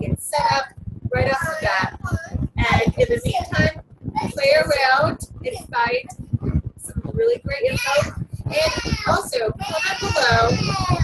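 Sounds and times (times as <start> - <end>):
young child singing: 1.2 - 4.7, 7.6 - 11.0.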